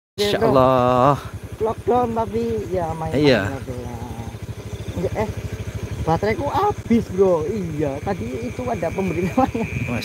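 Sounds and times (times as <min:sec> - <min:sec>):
motorcycle engine running: 0:00.2 - 0:10.0.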